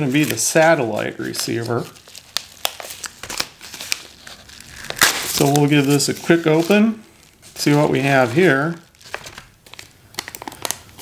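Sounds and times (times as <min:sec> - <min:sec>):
envelope tearing: 0:00.0 - 0:11.0
packaging crinkling: 0:00.0 - 0:11.0.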